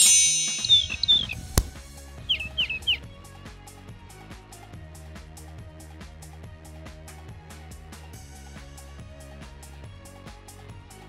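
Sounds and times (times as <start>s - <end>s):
short falling chirps: 0.0s - 3.0s.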